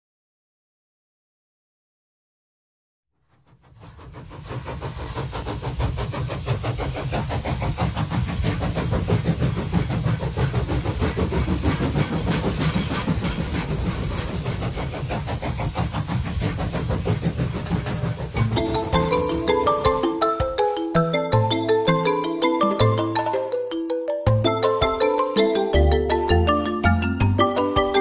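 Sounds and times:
train rumbling with hiss: 0:03.2 - 0:20.7.

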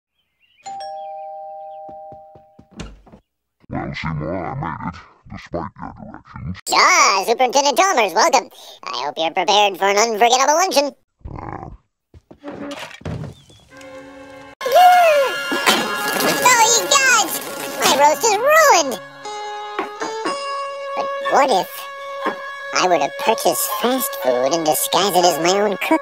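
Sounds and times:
two-note doorbell chime: 0:00.7 - 0:02.6
cartoon knocks and thunk: 0:02.6 - 0:03.2, 0:11.7 - 0:13.5
steady held note: 0:13.7 - 0:18.4.

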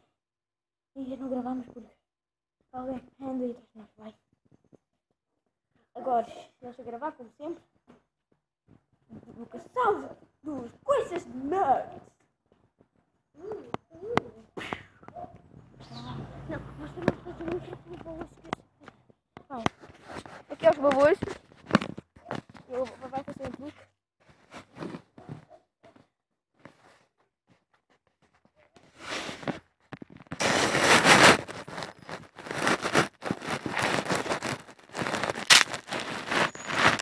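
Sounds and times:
crackling bursts with sharp clicks: 0:30.2 - 0:37.0.

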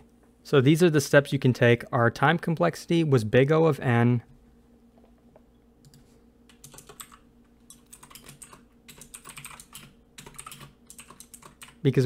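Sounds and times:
low steady hum: 0:00.0 - 0:12.0
faint keyboard typing: 0:05.8 - 0:12.0.

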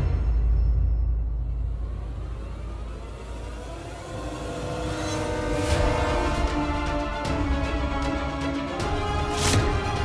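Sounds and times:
low noisy rumble score: 0:00.0 - 0:10.0.

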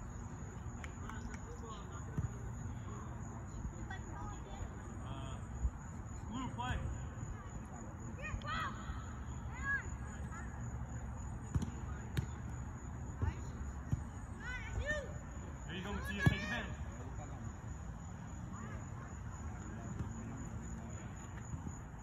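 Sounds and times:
distant children shouting: 0:08.2 - 0:11.1, 0:14.3 - 0:17.1.

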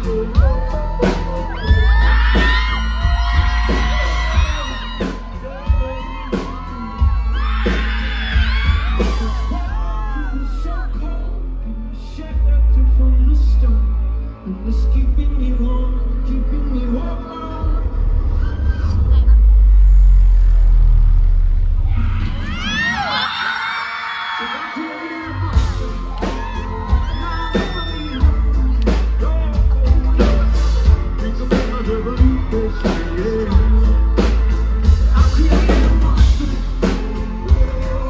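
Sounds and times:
live rock band: 0:00.0 - 0:11.5, 0:22.2 - 0:38.0
man singing: 0:00.0 - 0:18.5, 0:24.1 - 0:38.0
crowd whooping and cheering: 0:00.0 - 0:38.0.

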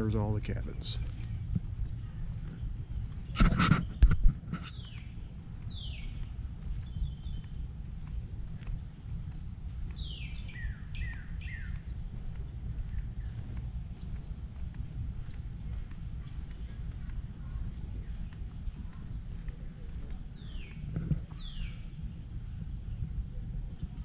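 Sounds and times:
steady low rumble: 0:00.0 - 0:24.0
birds whistling: 0:03.2 - 0:07.6, 0:09.6 - 0:13.8, 0:20.1 - 0:22.5
short bursts of noise: 0:03.3 - 0:04.8.

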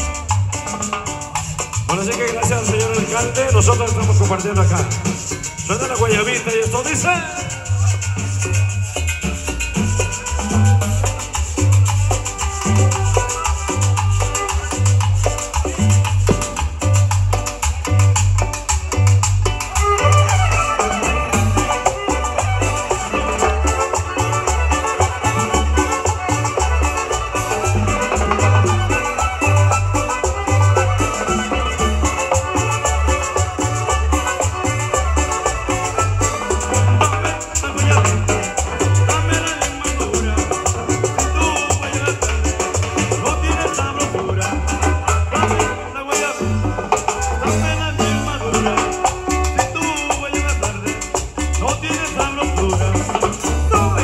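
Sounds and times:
band playing cumbia over speakers: 0:00.0 - 0:54.0.

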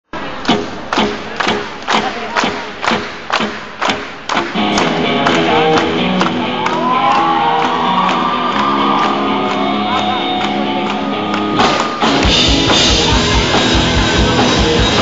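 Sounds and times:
live rock band: 0:02.9 - 0:15.0
electric guitars: 0:04.3 - 0:15.0
drum beat: 0:11.5 - 0:15.0.

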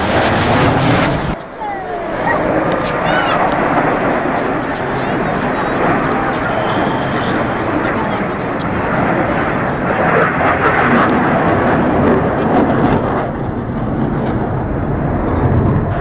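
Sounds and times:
jet engines flying over: 0:00.0 - 0:16.0.

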